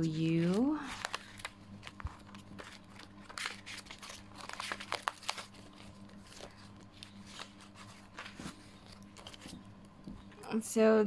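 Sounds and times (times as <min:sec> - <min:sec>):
paper pages rustling: 0:00.1 - 0:09.7.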